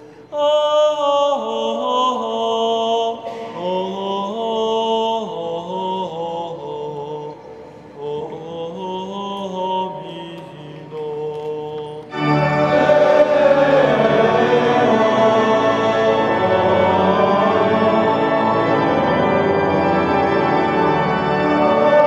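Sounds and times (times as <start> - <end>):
slow liturgical chant: 0.0 - 22.0.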